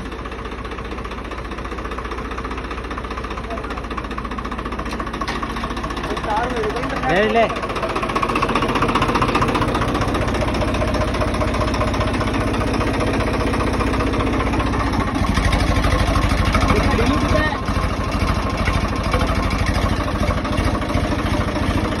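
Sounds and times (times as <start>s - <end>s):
tractor diesel engine running: 0.0s - 22.0s.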